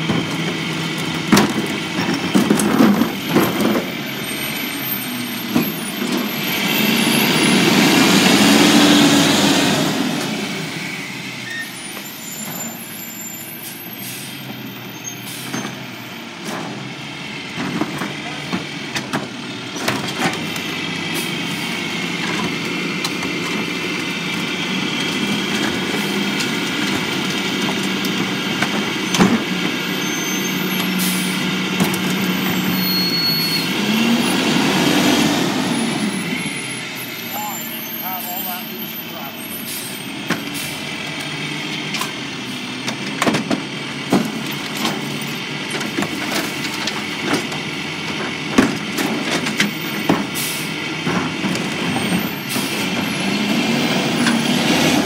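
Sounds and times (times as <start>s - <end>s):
garbage truck engine drone: 0.0s - 55.0s.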